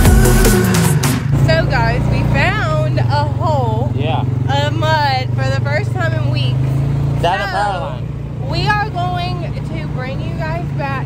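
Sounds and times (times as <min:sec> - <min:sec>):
atv engine running: 0:00.0 - 0:11.0
riders talking: 0:01.4 - 0:11.0.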